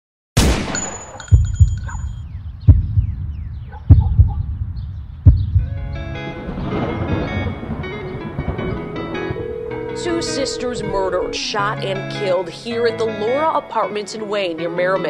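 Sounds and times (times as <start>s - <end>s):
gunshot: 0.4s - 1.2s
heavy low double thumps: 1.4s - 6.0s
sustained musical tones: 8.8s - 12.3s
thin high ringing tone: 9.4s - 11.6s.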